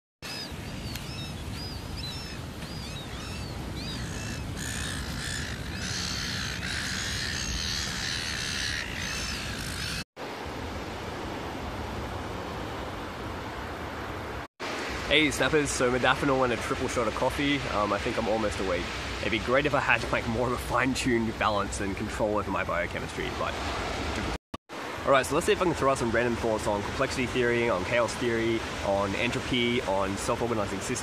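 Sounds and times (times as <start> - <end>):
gulls calling: 0.2 - 10.1.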